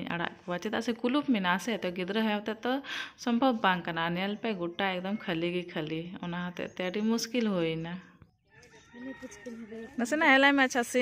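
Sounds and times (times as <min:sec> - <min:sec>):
faint rooster crowing: 0:08.3 - 0:10.4.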